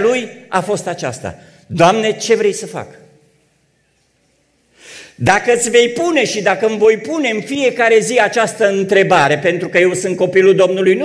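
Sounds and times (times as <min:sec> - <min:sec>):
man speaking: 0:00.0 - 0:03.2, 0:05.2 - 0:11.0
quick in-breath: 0:04.7 - 0:05.2.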